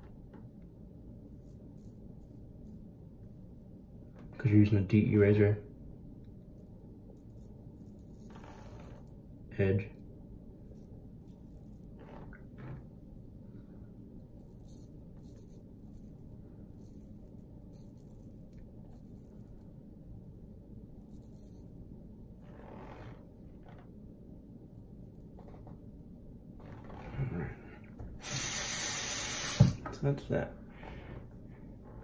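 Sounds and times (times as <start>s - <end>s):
tap running: 28.0s - 30.0s.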